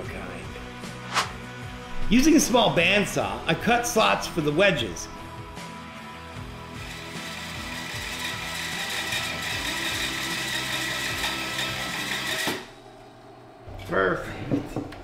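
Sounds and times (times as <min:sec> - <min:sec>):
background music: 0:00.0 - 0:12.9
bandsaw cutting wood: 0:06.8 - 0:12.7.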